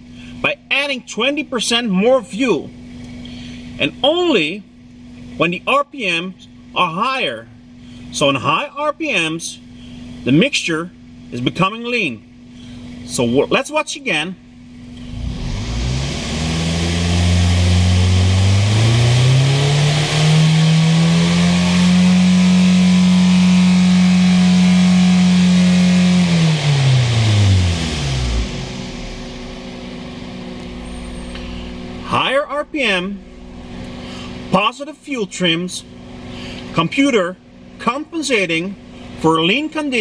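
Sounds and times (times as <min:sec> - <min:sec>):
car engine revving and idling: 0:07.4 - 0:40.0.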